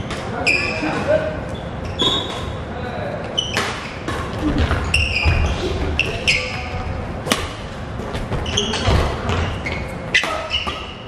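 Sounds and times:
shoes squeaking on floor: 0:00.0 - 0:07.0, 0:08.0 - 0:11.0
racket hitting shuttlecock: 0:07.2 - 0:07.7, 0:10.1 - 0:11.0.

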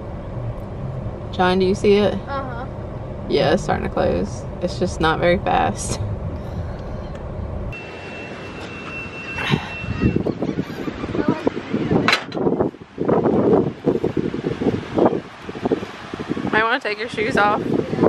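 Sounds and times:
car road noise: 0:00.0 - 0:18.0
wind on microphone: 0:09.4 - 0:18.0.

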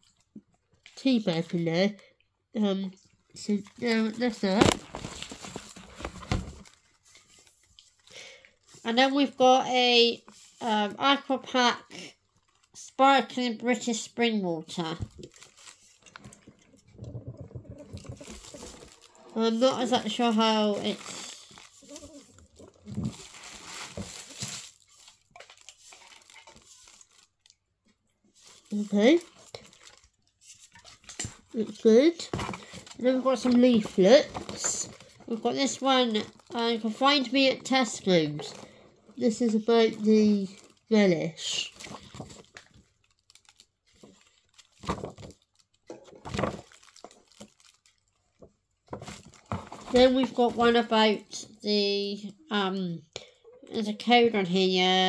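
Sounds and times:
paper leaflet rustling: 0:03.8 - 0:08.0, 0:17.5 - 0:27.3, 0:41.8 - 0:45.5
handling rustle of drinks can: 0:15.1 - 0:27.4.

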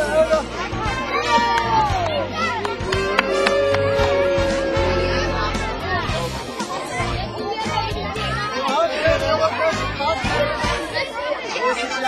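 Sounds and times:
background music with steady beat: 0:00.0 - 0:11.2
crowd chatter: 0:00.0 - 0:12.0.

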